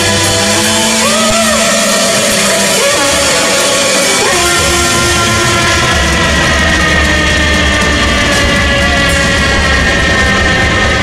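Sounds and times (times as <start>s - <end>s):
distorted garage rock band: 0.0s - 11.0s
held high tone sagging in pitch: 0.0s - 11.0s.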